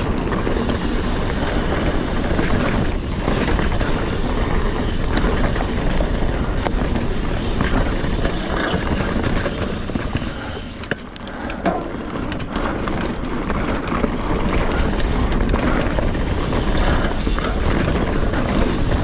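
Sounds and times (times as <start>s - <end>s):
wind buffeting microphone: 0.0s - 10.9s, 12.9s - 19.0s
bike rattling over bumps: 0.0s - 19.0s
tyres rolling over dirt and rocks: 0.0s - 19.0s.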